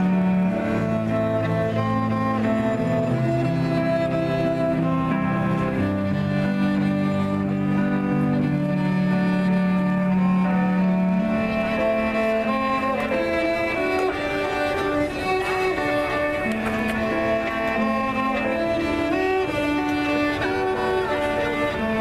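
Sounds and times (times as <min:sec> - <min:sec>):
bowed cello: 0:00.0 - 0:22.0.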